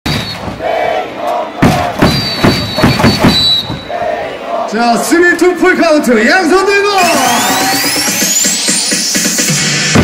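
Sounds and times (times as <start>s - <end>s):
loud thumping beats: 0.0s - 0.8s, 1.6s - 3.9s, 7.0s - 10.0s
crowd cheering: 0.1s - 5.2s, 7.0s - 9.4s.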